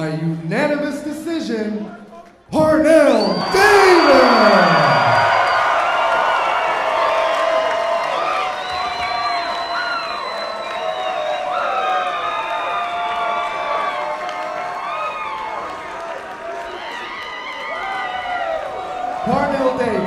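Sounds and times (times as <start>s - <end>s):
individual shouts: 2.6s - 5.2s
crowd cheering: 2.6s - 20.0s.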